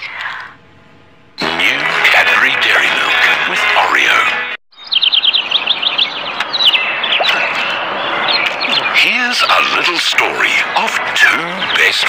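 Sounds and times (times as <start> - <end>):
advert music: 0.6 - 4.6
advert voice: 1.4 - 4.4
bird chirping: 4.7 - 10.0.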